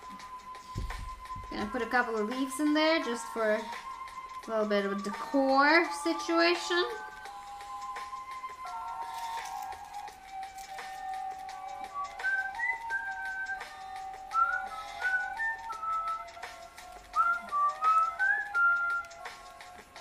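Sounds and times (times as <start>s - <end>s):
background music with held chords: 0.0s - 20.0s
whistled tune: 0.0s - 20.0s.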